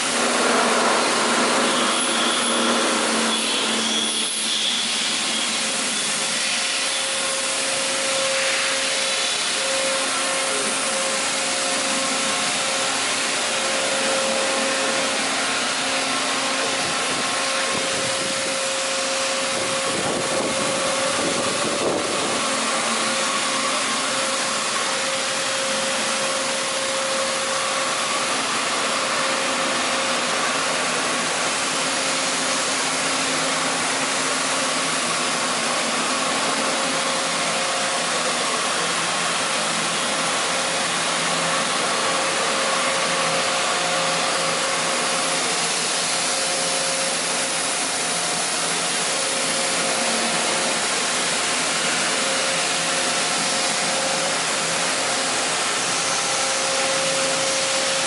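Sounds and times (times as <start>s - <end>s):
milling machine whirring hiss: 0.0s - 58.0s.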